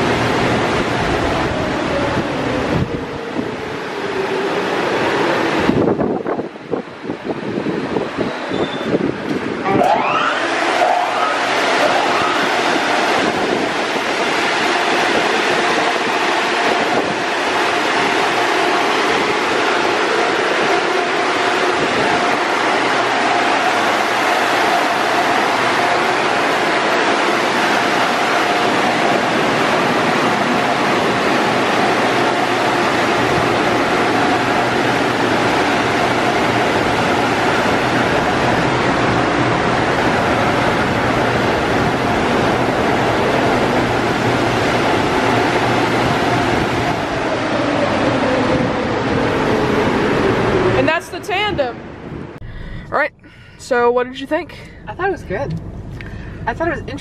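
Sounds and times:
blower dryers rushing air: 0.0 - 57.0.

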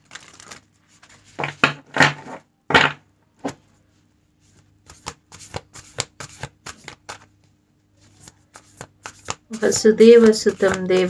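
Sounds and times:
cards shuffled by hand: 4.5 - 7.4, 8.0 - 11.0.

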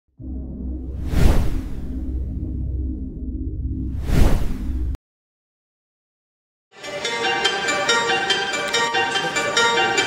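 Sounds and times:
low bass drone: 0.1 - 5.0
whoosh: 0.2 - 5.0.

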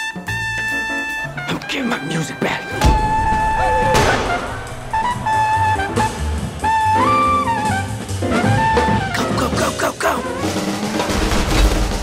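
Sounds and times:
horn section chord: 2.8 - 8.1
drums and bass: 2.8 - 12.0.

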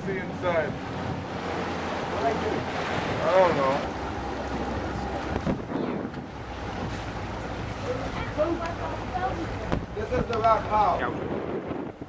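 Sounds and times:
wind noise on microphone: 0.0 - 1.4, 5.3 - 7.2, 9.5 - 12.0
low engine hum: 0.0 - 12.0
water rushing past boat: 0.0 - 12.0.

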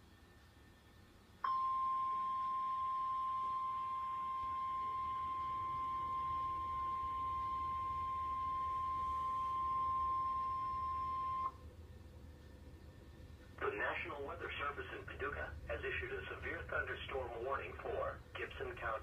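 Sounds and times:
steady high alarm tone: 1.4 - 11.6.

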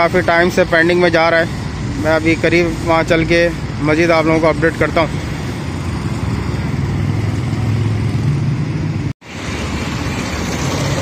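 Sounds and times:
vehicles passing close: 0.0 - 11.0.

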